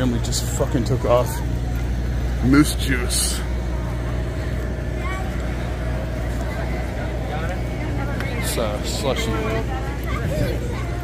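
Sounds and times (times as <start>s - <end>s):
faint chatter of people: 0.0s - 11.0s
low mechanical hum: 0.0s - 11.0s.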